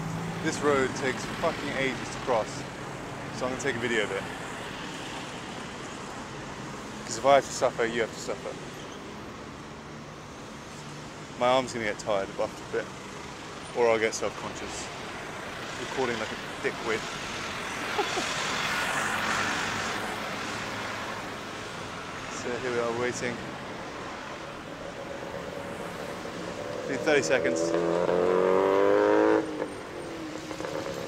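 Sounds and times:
busy road traffic: 0:00.0 - 0:31.0
passing cars and trucks: 0:00.0 - 0:31.0.

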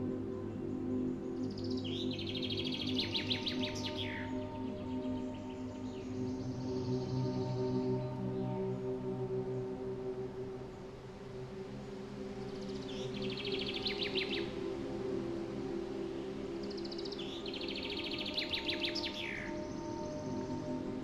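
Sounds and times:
soft ambient music: 0:00.0 - 0:21.0.

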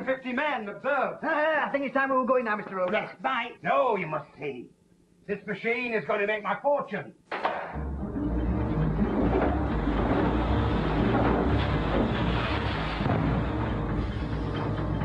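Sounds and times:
textile mill machine rumbling: 0:08.0 - 0:15.0
rapid clattering knocks: 0:09.0 - 0:15.0.

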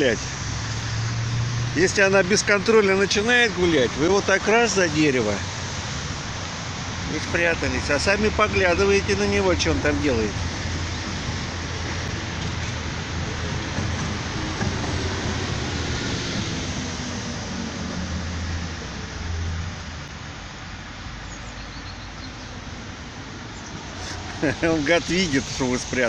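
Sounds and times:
hiss: 0:23.8 - 0:26.0.

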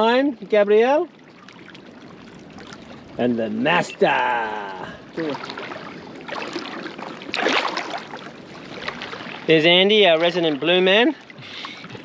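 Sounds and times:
waves lapping at shore: 0:00.0 - 0:12.0.

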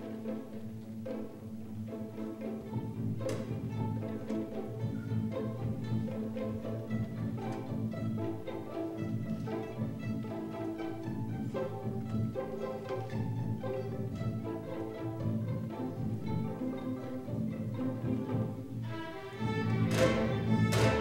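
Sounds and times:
string orchestra playing: 0:00.0 - 0:21.0.

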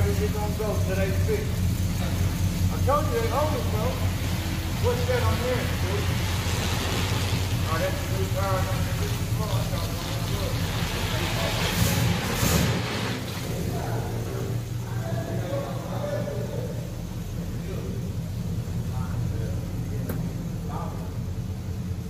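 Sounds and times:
car engine low rumble: 0:00.0 - 0:22.0.

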